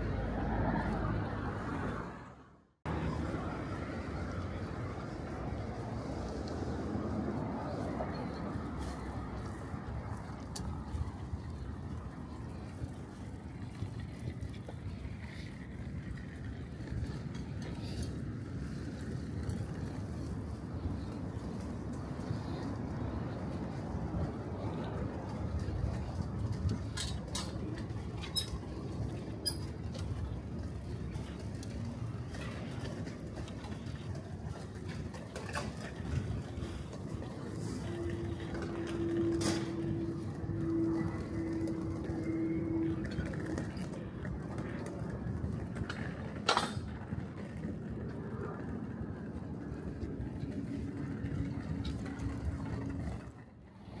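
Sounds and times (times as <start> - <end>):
distant traffic rumble: 0.0 - 54.0.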